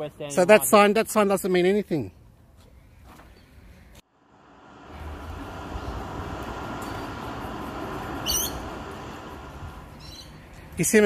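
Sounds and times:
road vehicle passing with rumble: 4.1s - 11.0s.

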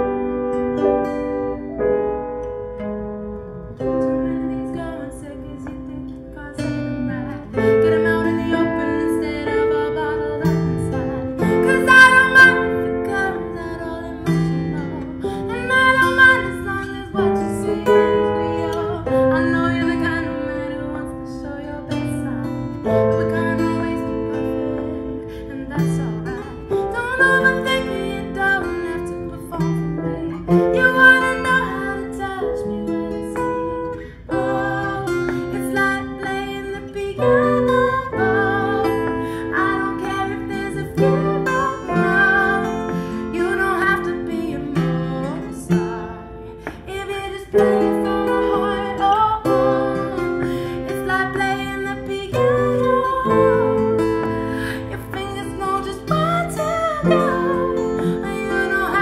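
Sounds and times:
acoustic guitar plucked and strummed: 0.0s - 59.0s
grand piano chords: 0.0s - 59.0s.

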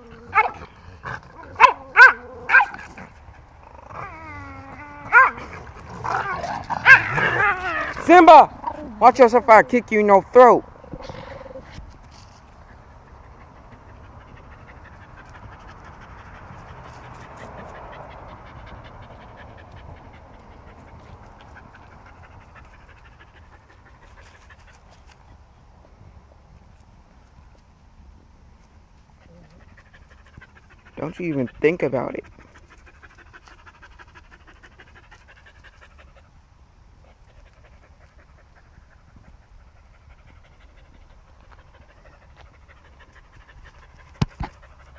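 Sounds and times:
dog panting: 12.5s - 25.4s, 29.1s - 44.9s.

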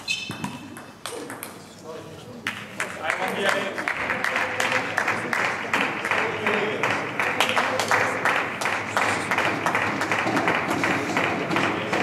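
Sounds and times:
short high-pitched squeak: 0.0s - 0.4s.

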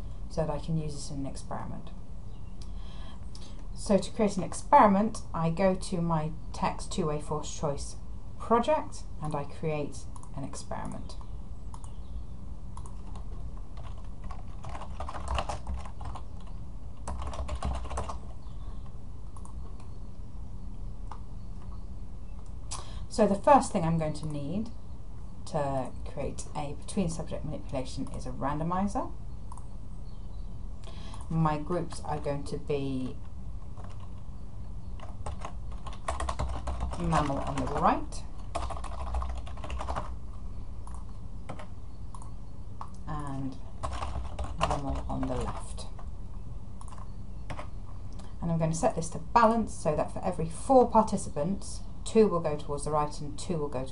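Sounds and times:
steady low hum: 0.0s - 53.9s
computer keyboard typing: 12.8s - 18.6s, 33.1s - 34.2s, 35.0s - 40.2s, 40.8s - 46.1s, 46.8s - 47.8s.

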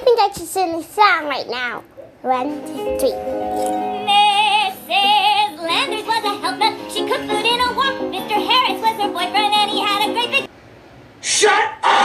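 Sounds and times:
instrumental backing music: 2.4s - 10.5s
high voice singing: 2.9s - 10.5s.

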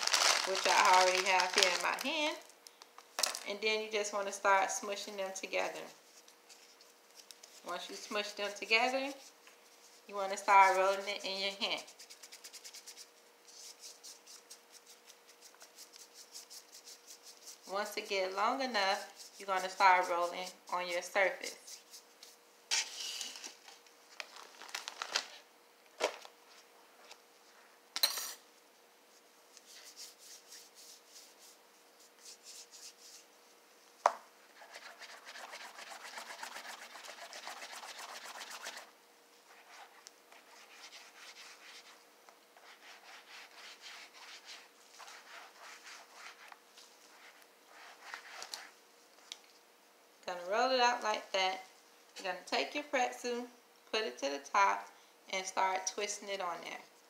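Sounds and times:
caramel rubbing on silicone mat: 0.0s - 2.4s, 5.6s - 22.4s, 29.1s - 48.8s.

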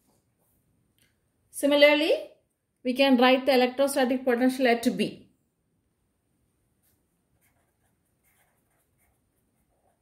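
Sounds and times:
pen scratching on paper: 6.8s - 10.0s.

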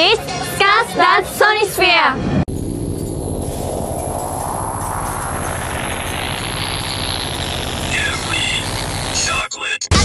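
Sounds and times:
rising whoosh: 2.2s - 9.2s
flickering low rumble: 2.2s - 9.5s.

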